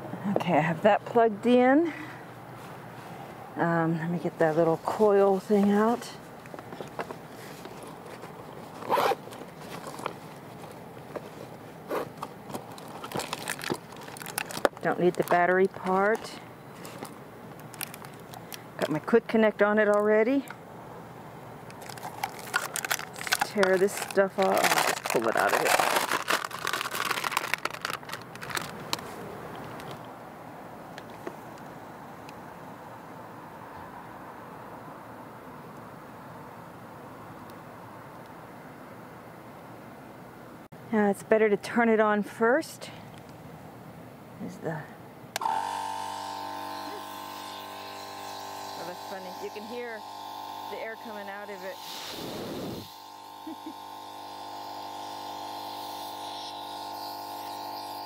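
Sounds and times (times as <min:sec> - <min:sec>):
plastic packaging crinkling: 0:06.8 - 0:18.9, 0:21.7 - 0:30.0
air compressor humming: 0:45.4 - 0:58.0
air blowing from hose: 0:51.8 - 0:53.0.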